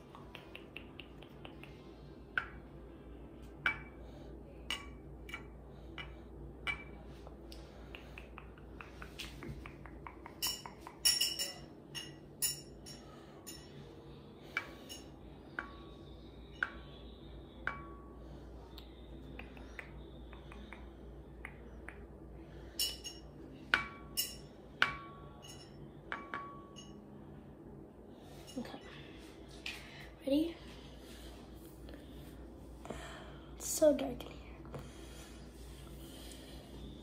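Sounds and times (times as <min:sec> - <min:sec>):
ringing clink: 0:10.4 - 0:13.7, 0:24.1 - 0:27.0.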